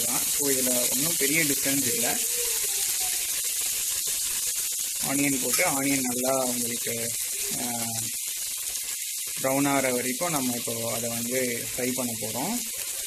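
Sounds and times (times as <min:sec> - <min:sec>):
onions sizzling in oil: 0:00.0 - 0:13.0.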